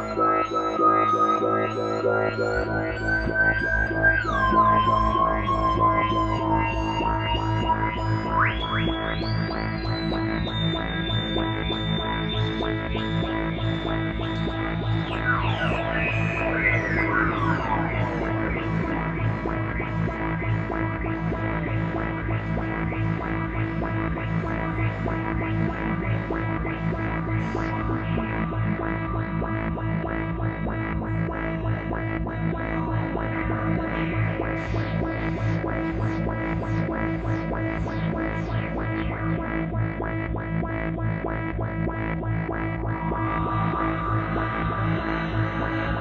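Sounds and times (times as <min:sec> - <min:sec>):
synthesizer low drone: 0:00.0 - 0:46.0.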